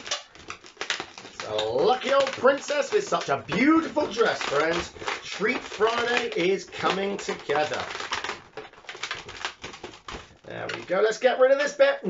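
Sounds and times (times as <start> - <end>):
balloons being twisted: 0.0 - 11.3.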